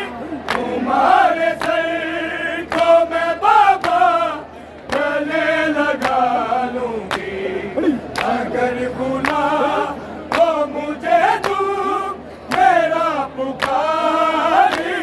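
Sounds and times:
men singing a lament: 0.0s - 15.0s.

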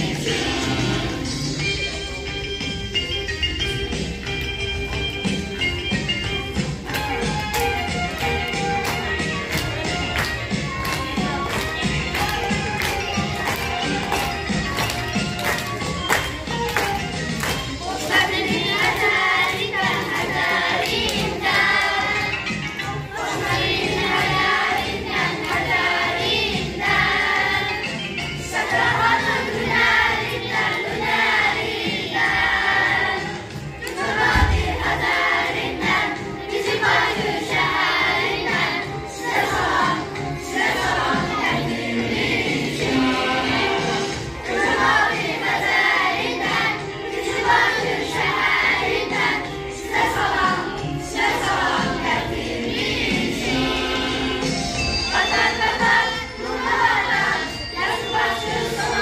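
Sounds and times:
children singing: 0.0s - 2.2s, 6.8s - 59.0s
low thump: 34.3s - 35.0s.

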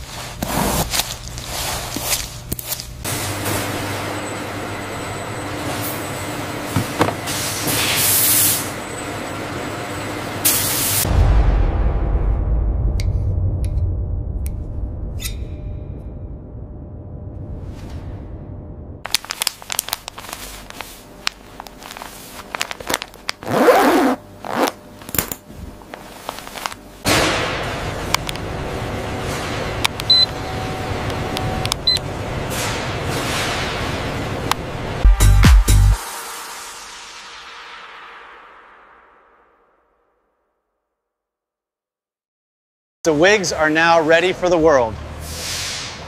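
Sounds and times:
metal zipper pulled shut: 23.4s - 25.4s.

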